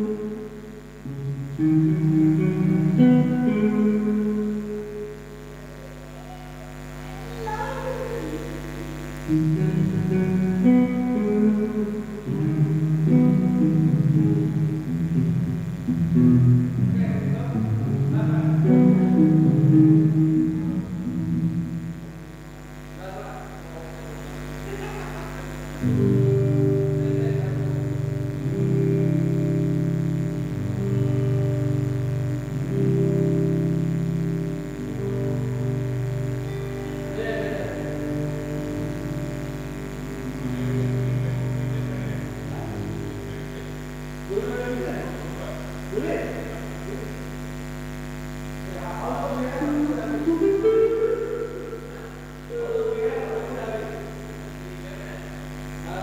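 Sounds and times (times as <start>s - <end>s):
steady low hum: 0.0s - 56.0s
person speaking: 5.6s - 8.8s, 36.8s - 39.0s, 40.4s - 47.2s, 48.7s - 56.0s.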